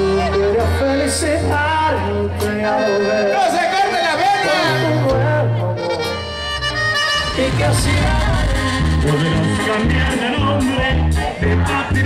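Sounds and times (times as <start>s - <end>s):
low bass line: 0.0s - 12.0s.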